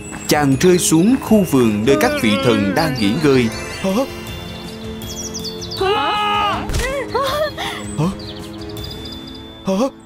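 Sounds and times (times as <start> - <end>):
cartoon background music: 0.2 - 10.0
high chirping notes: 0.5 - 6.5.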